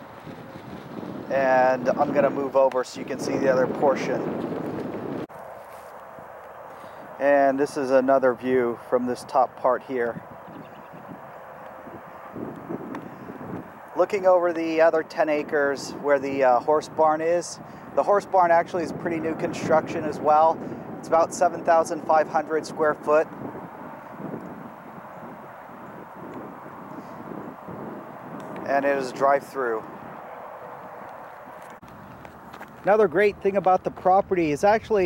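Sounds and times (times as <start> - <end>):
outdoor ambient rushing noise: 0.0 - 34.9.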